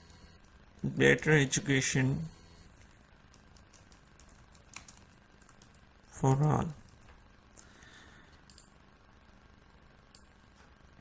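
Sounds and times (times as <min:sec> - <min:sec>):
keyboard typing: 0:02.8 - 0:07.1, 0:08.4 - 0:08.7.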